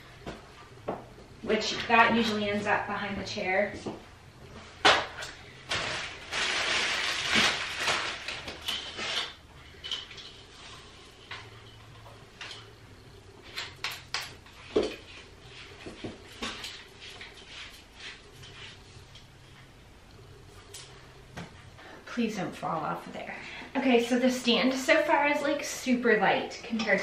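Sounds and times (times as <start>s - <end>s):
rustling: 5.4s - 12.0s.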